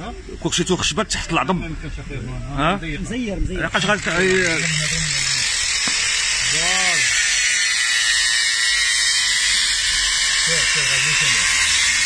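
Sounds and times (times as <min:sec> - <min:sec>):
high hissing whir: 0:03.6 - 0:12.0.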